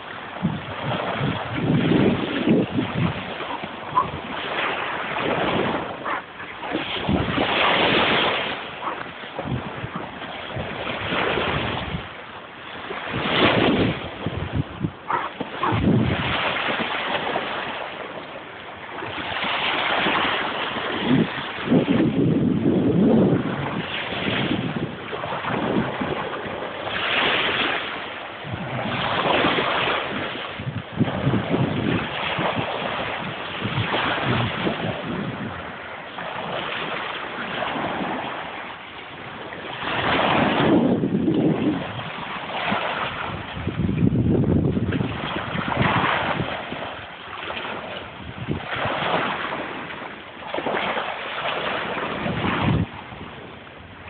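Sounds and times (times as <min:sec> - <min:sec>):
small waves washing onto beach: 0:00.0 - 0:54.0
wind buffeting microphone: 0:00.0 - 0:54.0.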